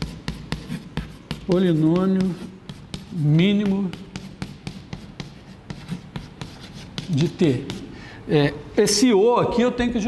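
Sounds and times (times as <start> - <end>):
chalk tapping and scraping on blackboard: 0.0 - 8.0.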